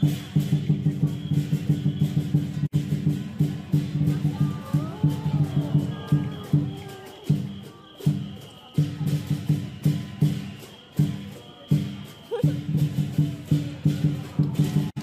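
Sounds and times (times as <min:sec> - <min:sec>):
big drum beating: 0:00.0 - 0:15.0
cymbals clashing: 0:00.0 - 0:15.0.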